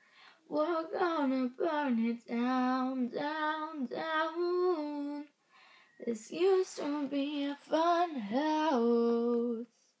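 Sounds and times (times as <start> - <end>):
woman singing unaccompanied: 0.5 - 5.4, 6.0 - 9.9.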